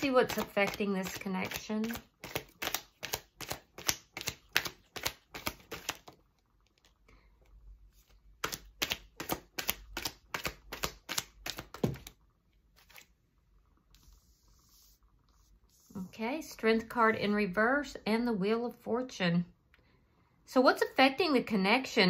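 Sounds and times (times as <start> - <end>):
cards shuffling: 0.0 - 7.0, 8.0 - 12.2, 12.8 - 13.1.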